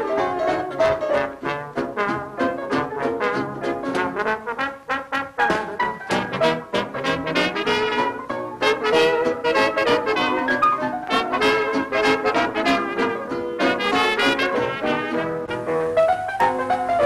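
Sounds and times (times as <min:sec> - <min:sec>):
rhythm section beat: 0:00.0 - 0:15.8
dance band brass section: 0:00.0 - 0:17.0.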